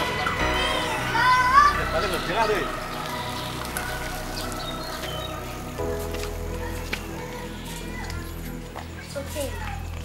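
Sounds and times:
background music with held chords: 0.0 - 9.2.

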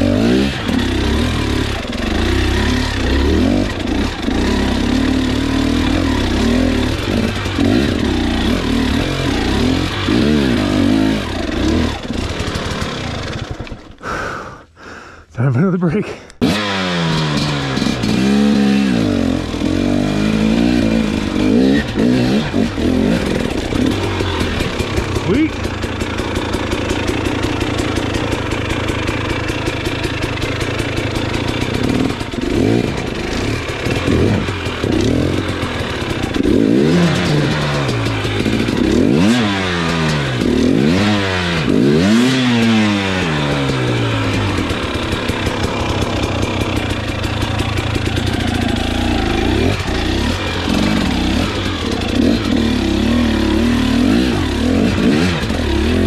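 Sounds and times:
dirt bike engine revving: 0.0 - 14.1, 16.4 - 56.0.

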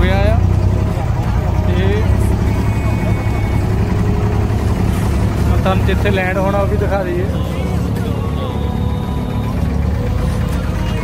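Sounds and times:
boat engine rumbling: 0.0 - 11.0.

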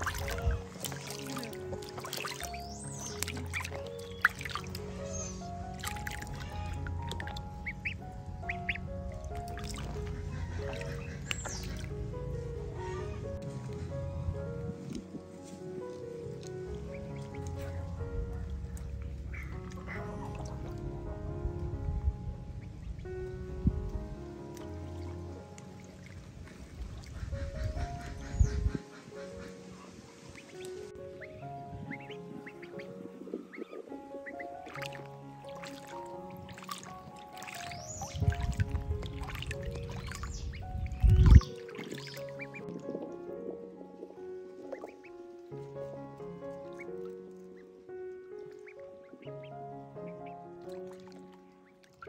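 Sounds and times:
ducklings peeping: 0.0 - 15.2, 16.0 - 21.1, 22.4 - 45.5, 46.6 - 52.0
background music with held notes: 0.0 - 52.0.

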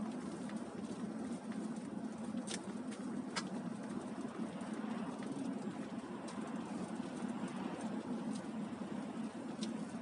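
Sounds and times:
low engine hum: 0.0 - 10.0
tyres on wet slushy road: 0.0 - 10.0.

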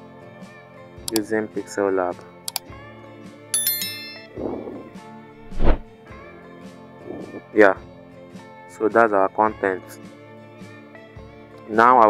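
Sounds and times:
bright bell chime: 3.6 - 4.5.

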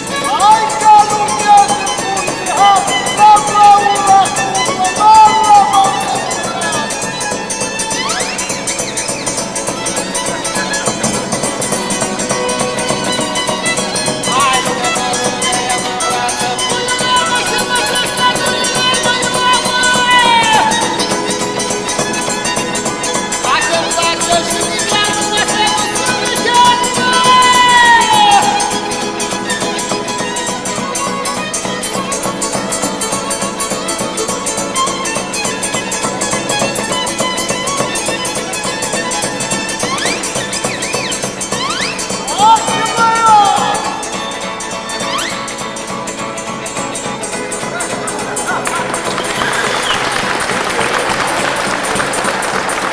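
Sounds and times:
fiddle playing sliding melody: 0.0 - 52.9
strummed guitar accompaniment: 0.0 - 52.9.

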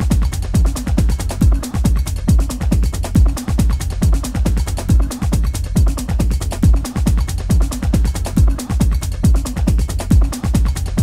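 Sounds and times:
kick drum: 0.0 - 11.0
steady low bass: 0.0 - 11.0.

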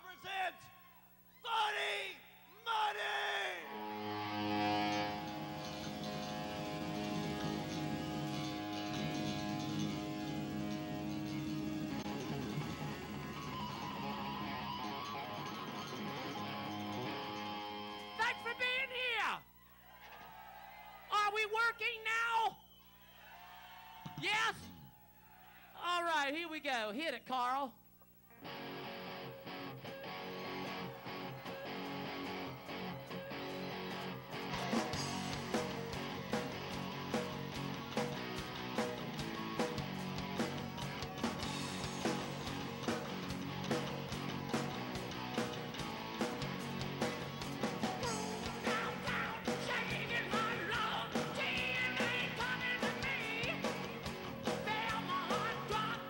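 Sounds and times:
electric guitar chords ringing: 3.6 - 18.9, 28.3 - 56.0.

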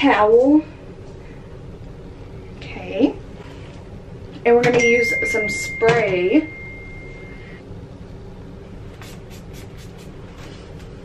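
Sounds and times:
low background rumble: 0.0 - 11.0
hair spray bottle spritzes: 9.0 - 10.2.

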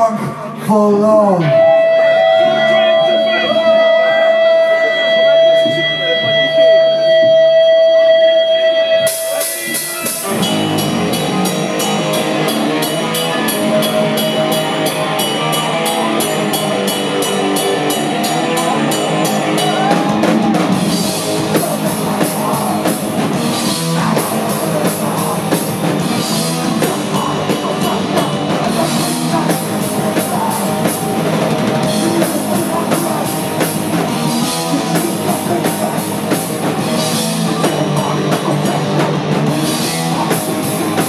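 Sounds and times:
metal band playing: 0.0 - 41.0
guitar tone ringing: 1.4 - 34.8.

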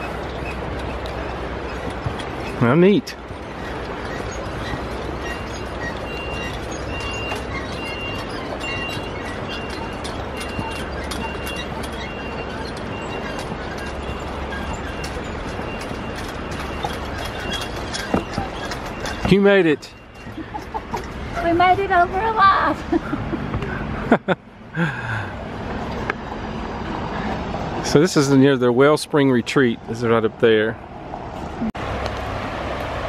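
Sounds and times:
footsteps on wooden planks: 3.2 - 21.4.

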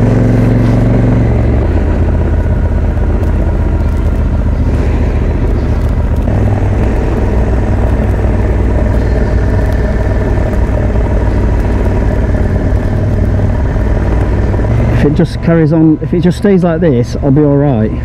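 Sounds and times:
motorcycle engine running: 0.0 - 18.0
road noise: 0.0 - 18.0
wind: 0.0 - 18.0.

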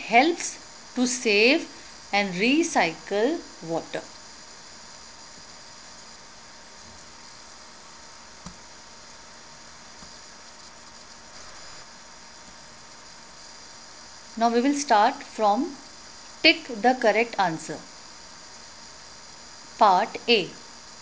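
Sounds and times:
low background hiss: 0.0 - 21.0.

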